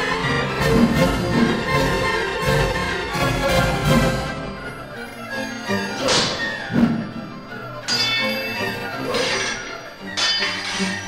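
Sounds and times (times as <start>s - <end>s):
music: 0.0s - 11.0s
sword clashing against shield: 6.0s - 6.5s, 7.9s - 11.0s.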